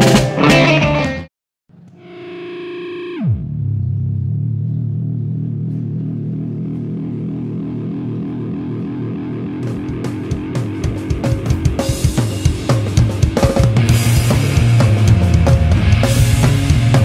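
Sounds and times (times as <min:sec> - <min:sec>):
distorted guitar pitch dive: 0:00.0 - 0:17.0
low distorted guitar drone: 0:00.0 - 0:17.0.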